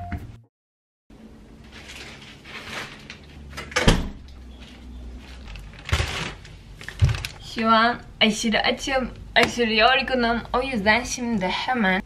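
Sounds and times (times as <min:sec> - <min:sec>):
plastic bag rustling: 0:01.5 - 0:03.6, 0:04.5 - 0:07.6
door thump: 0:03.8 - 0:04.2.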